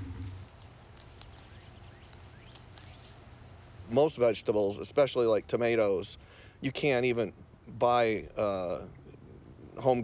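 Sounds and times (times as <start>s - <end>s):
rustling of leafy greens: 0.0s - 5.5s
small crisp clicks: 0.5s - 3.2s.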